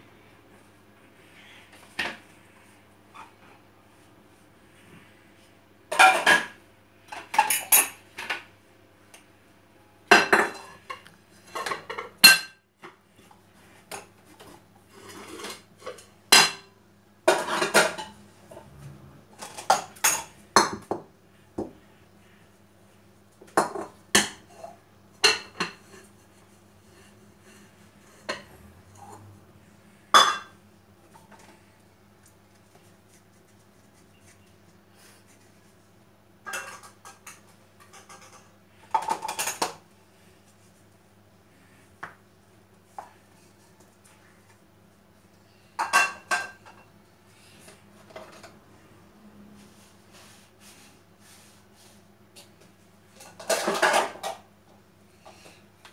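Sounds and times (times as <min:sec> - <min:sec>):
dishes clinking and clattering: 0:05.9 - 0:08.5, 0:10.1 - 0:12.6, 0:14.9 - 0:16.7, 0:17.3 - 0:18.2, 0:19.4 - 0:21.1, 0:23.5 - 0:26.1, 0:30.1 - 0:30.6, 0:36.4 - 0:39.8, 0:45.8 - 0:46.9, 0:53.1 - 0:54.5.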